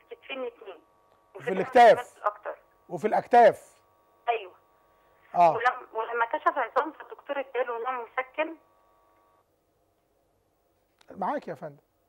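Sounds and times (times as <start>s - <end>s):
faint phone line hum: 0.0s - 10.8s.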